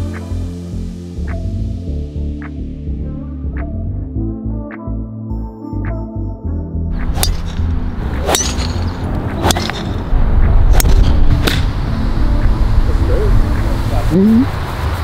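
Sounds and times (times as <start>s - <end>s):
electronic music: 0.0s - 14.5s
golf club striking ball: 7.0s - 10.0s, 10.7s - 11.8s.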